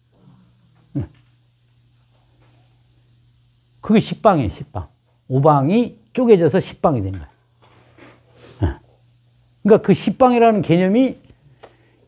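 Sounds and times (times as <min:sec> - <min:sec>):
man murmuring mm: 0:00.2 - 0:01.3, 0:08.4 - 0:09.0.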